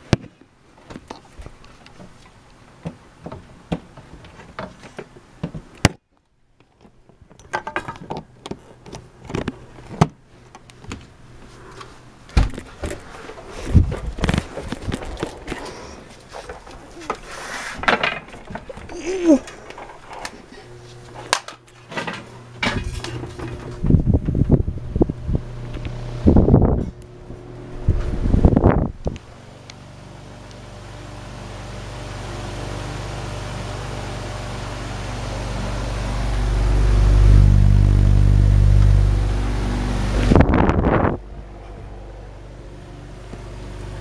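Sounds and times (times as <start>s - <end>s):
electric fan motor hum and air: 8.3s - 44.0s.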